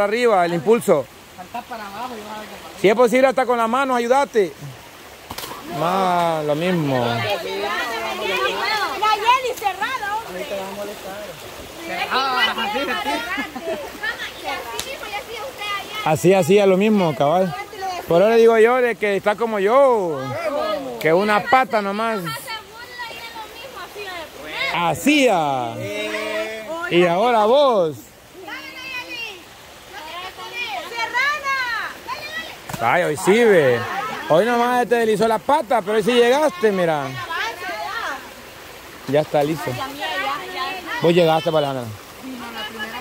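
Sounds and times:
creek running: 0.0s - 43.0s
stream rushing: 0.0s - 43.0s
voices: 0.0s - 43.0s.

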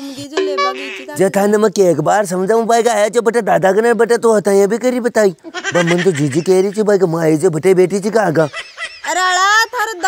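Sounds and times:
person making wavering wordless sound: 0.4s - 1.3s.

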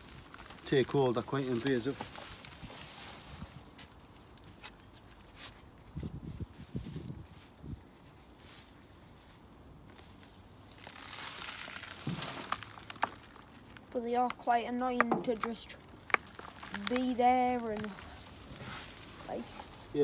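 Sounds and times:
soil crunching and rustling: 0.0s - 20.0s.

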